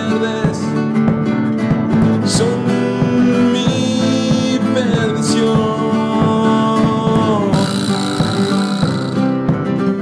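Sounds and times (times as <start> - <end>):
instrumental rock guitars: 0.0 - 10.0.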